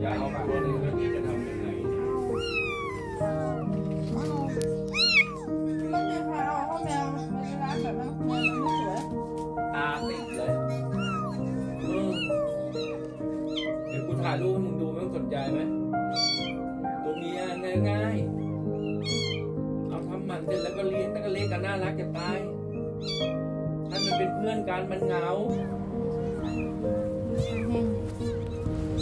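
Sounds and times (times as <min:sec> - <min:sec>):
background music with held notes: 0:00.0 - 0:29.0
kittens meowing: 0:00.0 - 0:29.0.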